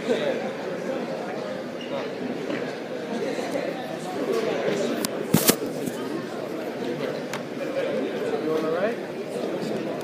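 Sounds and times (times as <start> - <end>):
echoing murmur of voices: 0.0 - 10.0.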